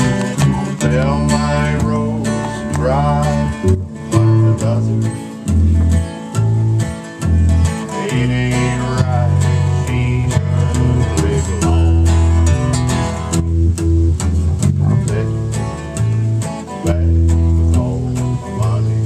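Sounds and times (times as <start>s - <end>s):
acoustic guitar: 0.0s - 19.0s
electric guitar: 0.0s - 19.0s.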